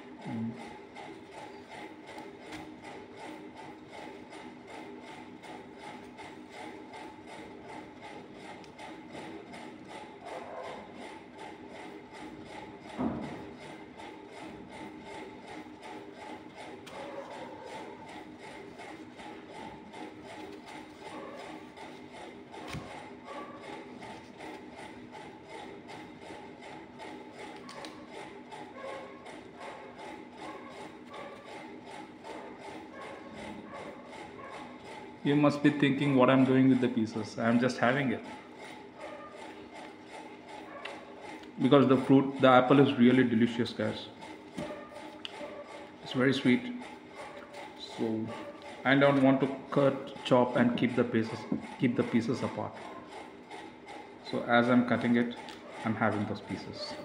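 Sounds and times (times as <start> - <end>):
small motor whirring with rattle: 0.0 - 57.0.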